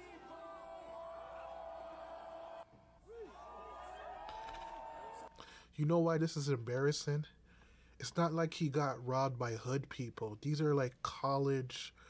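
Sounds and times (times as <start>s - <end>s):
crowd yelling and cheering: 0.0s - 5.4s.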